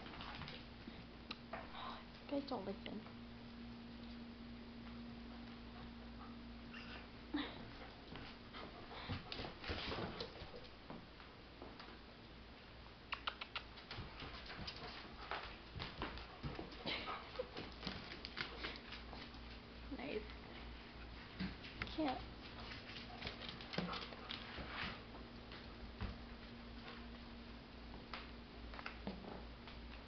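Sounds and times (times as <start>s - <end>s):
dogs scuffling: 7.8s - 11.9s, 13.7s - 27.3s.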